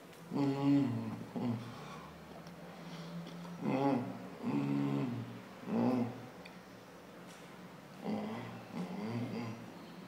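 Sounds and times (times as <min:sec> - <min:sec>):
man humming: 0:00.3 - 0:02.1, 0:03.6 - 0:06.2, 0:08.0 - 0:09.7.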